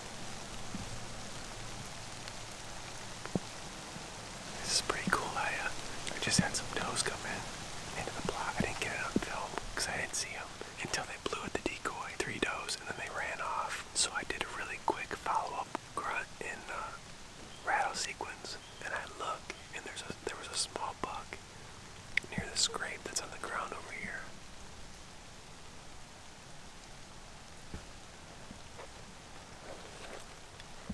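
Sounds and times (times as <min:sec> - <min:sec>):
man whispering: 0:04.5 - 0:17.0, 0:17.6 - 0:21.4, 0:22.2 - 0:24.4.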